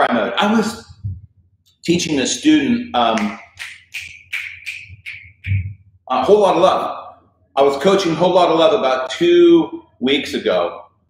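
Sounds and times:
man snapping fingers: 0:03.2 - 0:05.7.

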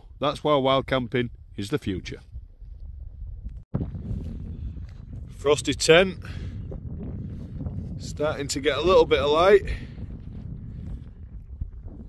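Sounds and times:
wind buffeting microphone: 0:01.2 - 0:12.0.

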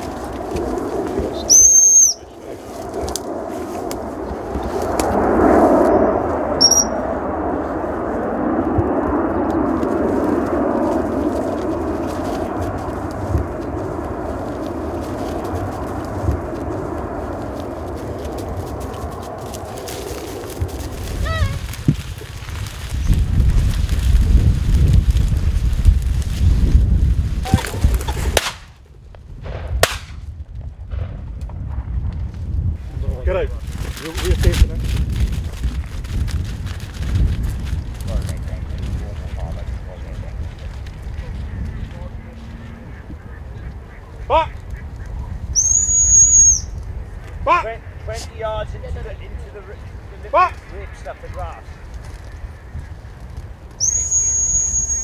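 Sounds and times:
outdoor rustle: 0:00.0 - 0:55.0
wind buffeting microphone: 0:00.0 - 0:55.0
dog whistle pip: 0:01.5 - 0:02.2, 0:06.6 - 0:07.0, 0:45.6 - 0:46.7, 0:53.8 - 0:55.0.

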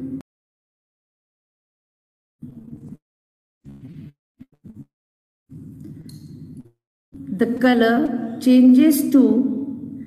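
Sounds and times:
woman narrating: 0:07.2 - 0:09.8.

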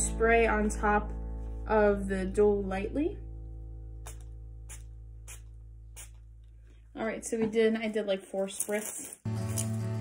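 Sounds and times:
soft background music: 0:00.0 - 0:05.4
spray bottle spritzes: 0:04.0 - 0:06.2.

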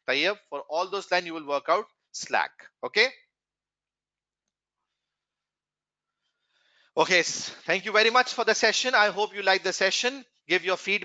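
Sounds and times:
man speaking: 0:00.0 - 0:03.2, 0:07.0 - 0:11.0.

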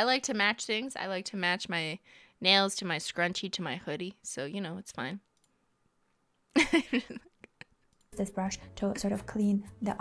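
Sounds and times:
woman laughing: 0:06.5 - 0:07.8.

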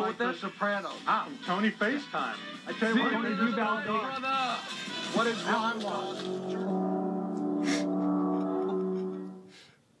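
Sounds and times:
held musical chord: 0:05.9 - 0:09.6.

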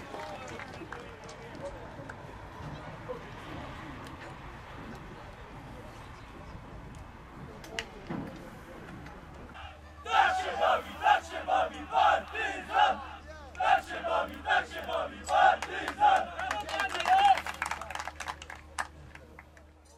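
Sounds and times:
players chanting together: 0:09.6 - 0:16.5.

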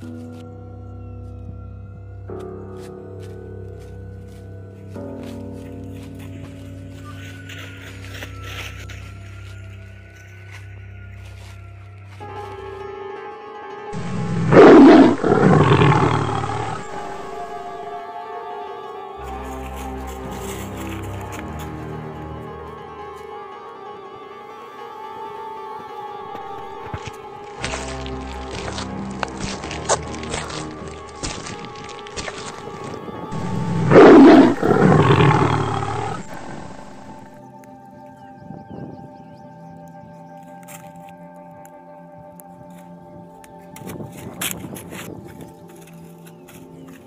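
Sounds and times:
background music: 0:00.0 - 0:47.0
tiger roaring: 0:14.0 - 0:17.9, 0:33.3 - 0:37.4.

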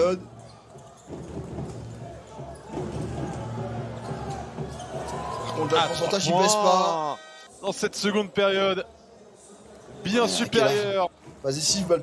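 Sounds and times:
crowd noise with voices: 0:00.0 - 0:12.0.

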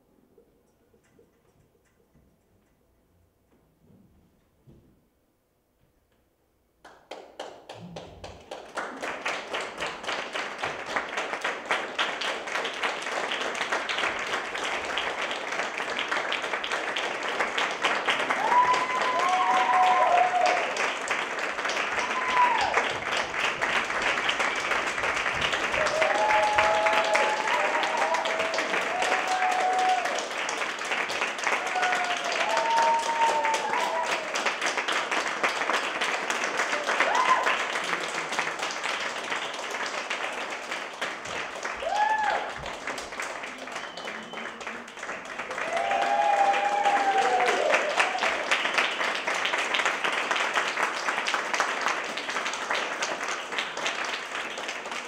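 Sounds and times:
audience applauding: 0:06.9 - 0:55.0
whoops and cheers: 0:18.2 - 0:20.8, 0:21.9 - 0:23.0, 0:25.7 - 0:30.4, 0:31.4 - 0:34.5, 0:36.6 - 0:37.8, 0:41.7 - 0:42.8, 0:45.5 - 0:48.5.

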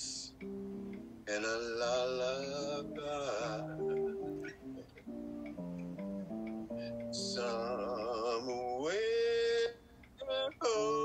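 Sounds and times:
plucked acoustic guitar: 0:00.3 - 0:08.1
man singing with vibrato: 0:01.2 - 0:04.5, 0:06.7 - 0:11.0.

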